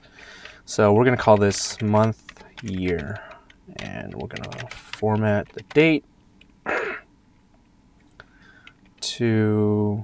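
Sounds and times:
person breathing: 0.0 - 0.7, 2.2 - 3.6, 8.2 - 8.9.

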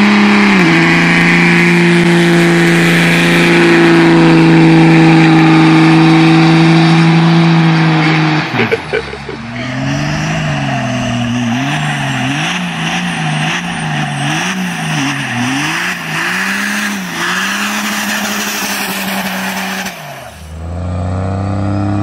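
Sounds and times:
diesel engine at high revs: 0.0 - 22.0.

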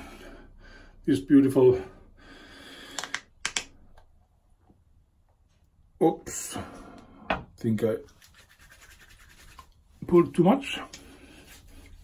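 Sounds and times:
plastic clicks and taps: 2.9 - 4.1.

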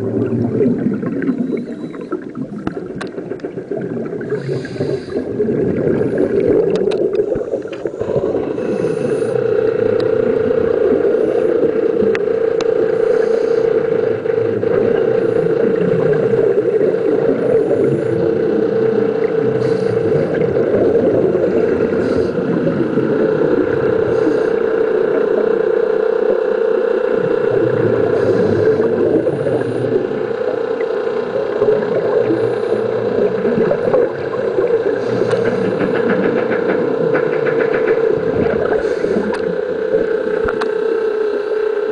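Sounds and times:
steady droning hum: 0.0 - 41.9
underwater rushing noise: 0.0 - 41.9.

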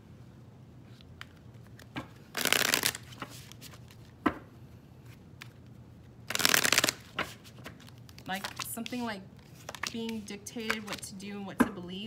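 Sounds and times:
cards riffling: 1.0 - 4.2, 6.3 - 11.1.

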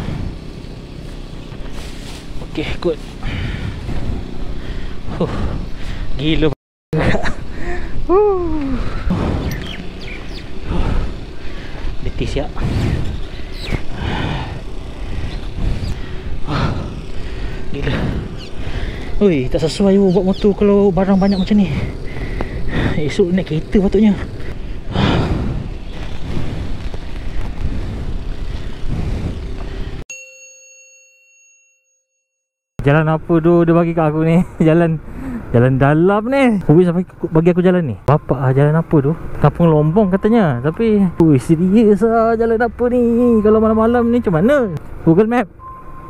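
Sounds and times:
motorcycle riding: 0.0 - 6.4, 7.6 - 30.0, 38.1 - 46.0
low wind rumble: 0.0 - 30.0, 32.8 - 46.0
high bird chirps: 9.4 - 10.6, 13.2 - 13.9, 18.3 - 18.6, 19.7 - 22.1
microphone handling noise: 25.0 - 29.7
bell-like ding: 30.1 - 32.2.

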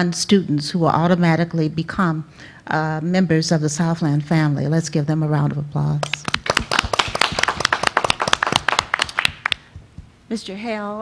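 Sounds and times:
people clapping: 6.0 - 10.0.

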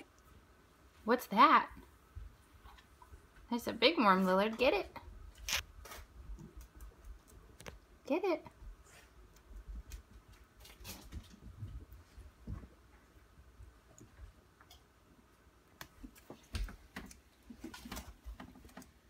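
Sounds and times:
lizard crunching food: 5.3 - 7.8.

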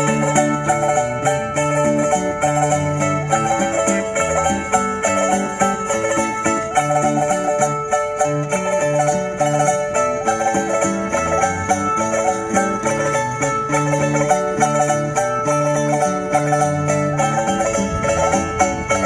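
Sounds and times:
steady bass line: 0.0 - 19.0
strummed and plucked string ensemble: 0.0 - 19.0.

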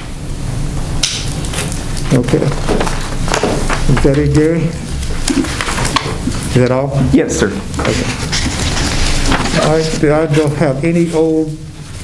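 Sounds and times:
low rumbling room noise: 0.0 - 12.0.

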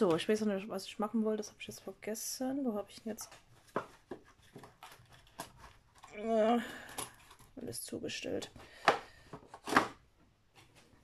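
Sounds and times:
small objects rustling and scraping: 3.0 - 7.6.

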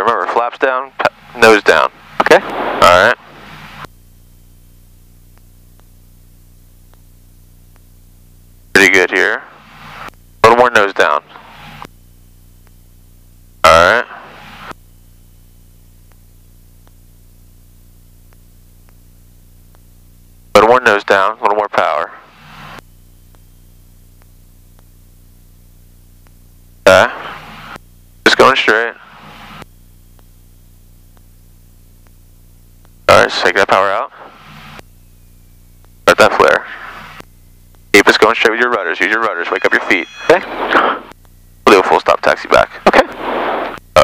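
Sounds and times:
radio squelch hiss: 0.0 - 3.9, 8.7 - 11.9, 13.6 - 14.8, 18.1 - 44.0
muffled plane engine drone: 0.0 - 44.0
voice over intercom: 0.1 - 3.2, 38.0 - 40.9
faint ticks: 24.1 - 24.9.

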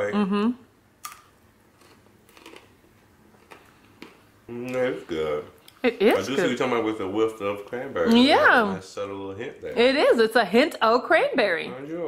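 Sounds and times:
person chewing: 1.0 - 4.8.

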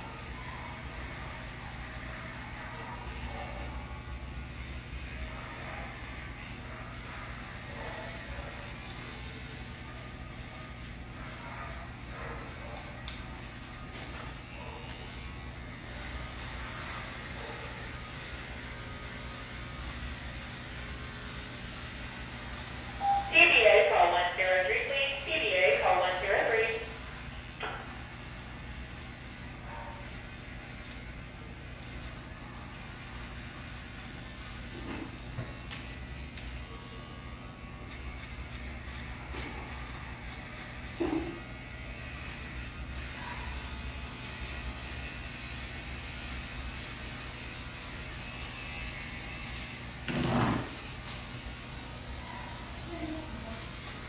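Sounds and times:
electric clippers humming: 15.9 - 23.0, 30.7 - 54.0.

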